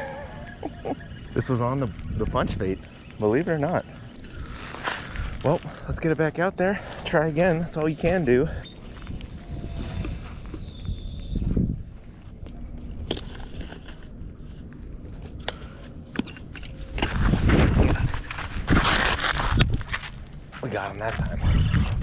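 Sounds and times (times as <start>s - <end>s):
fishing line whizzing off reel: 9.0s - 11.5s
footsteps on sandy gravel: 17.1s - 21.4s.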